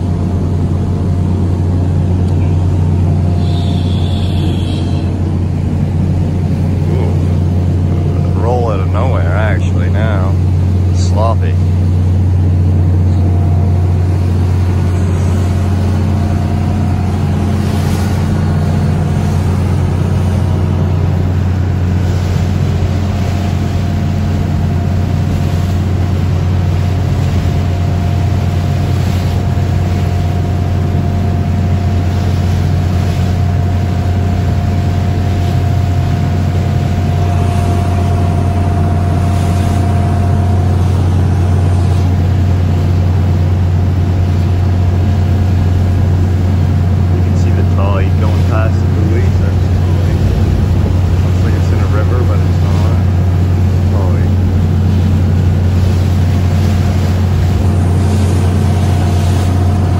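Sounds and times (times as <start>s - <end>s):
boat engine droning: 0.0s - 59.9s
water washing along hull: 0.0s - 59.9s
faint high whine: 2.2s - 5.3s.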